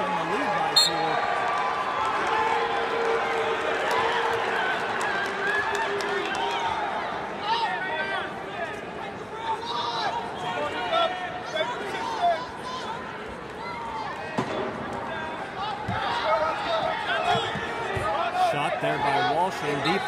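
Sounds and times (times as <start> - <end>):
crowd hubbub: 0.0 - 20.0.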